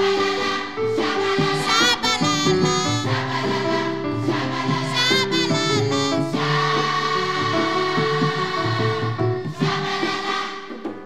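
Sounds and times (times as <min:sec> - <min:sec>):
children's choir singing: 0:00.0 - 0:11.0.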